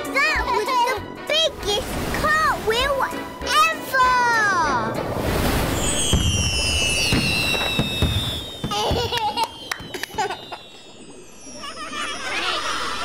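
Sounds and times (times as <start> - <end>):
falling whistling tones: 5.7 - 13.0.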